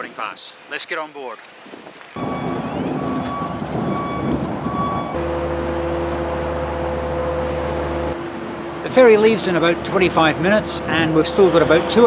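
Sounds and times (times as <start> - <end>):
vehicle reversing alarm beeping: 2.2 - 8.2
low engine hum: 2.6 - 8.9
rough machinery rumble: 2.6 - 12.0.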